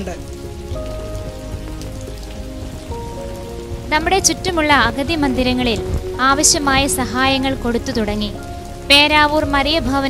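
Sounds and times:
soft music of sustained chords: 0.0s - 10.0s.

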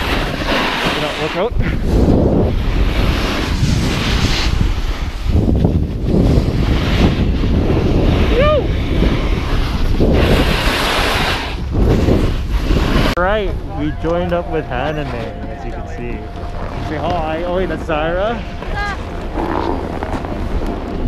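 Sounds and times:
snowboard edges scraping snow: 0.0s - 21.0s
wind rushing over microphone: 0.0s - 21.0s.

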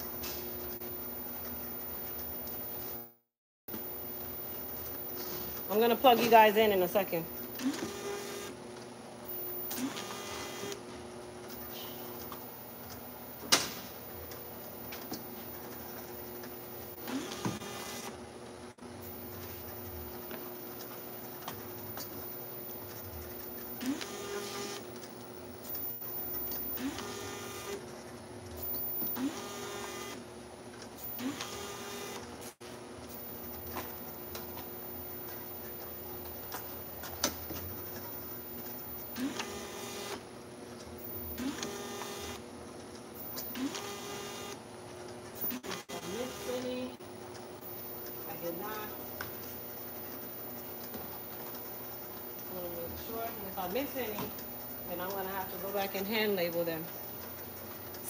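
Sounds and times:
label head whirring whine: 0.0s - 44.7s
labeling machine motor hum: 0.0s - 58.0s.

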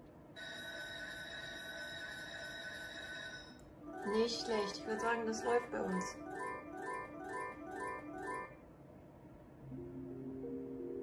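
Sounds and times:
slot machine electronic tone: 0.4s - 8.6s.

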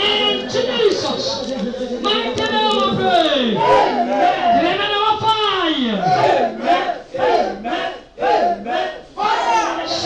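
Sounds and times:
woman praying into a microphone: 0.0s - 8.8s.

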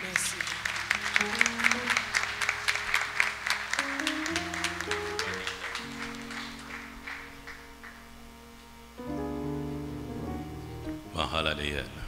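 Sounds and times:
congregation clapping: 0.0s - 8.4s
soft sustained instrumental chords: 0.0s - 12.0s.

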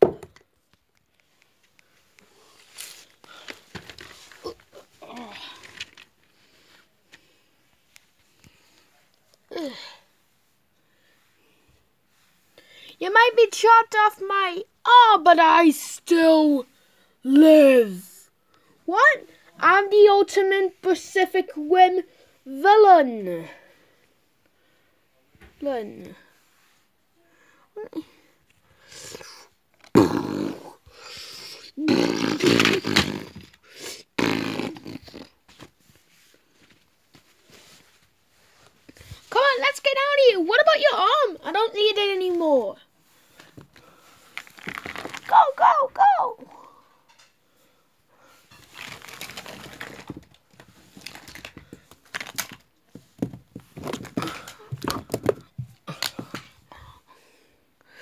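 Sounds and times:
rustling and crinkling: 0.0s - 9.5s, 35.1s - 40.2s, 42.0s - 45.8s, 48.2s - 56.9s.

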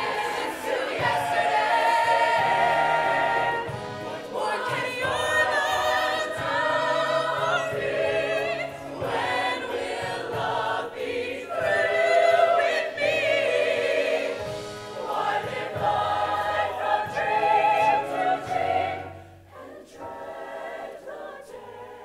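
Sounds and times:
choir singing in harmony: 0.0s - 22.0s.

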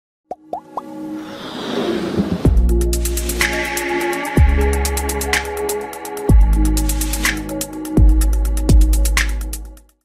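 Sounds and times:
musical build: 0.6s - 5.2s.

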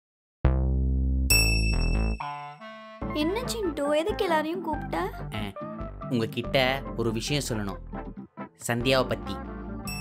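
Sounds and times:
light background music: 2.1s - 10.0s
child talking: 3.2s - 5.2s.

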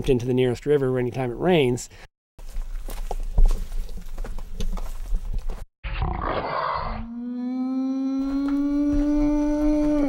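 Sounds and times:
harsh roar and growl: 5.9s - 7.5s.

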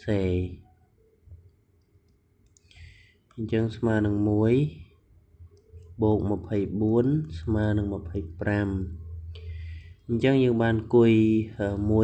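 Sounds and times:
person speaking: 0.0s - 0.8s, 2.5s - 12.0s.

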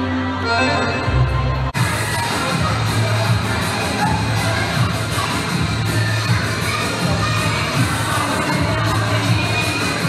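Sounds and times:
loud music from speakers: 0.0s - 10.0s
children shouting and cheering: 1.0s - 10.0s.

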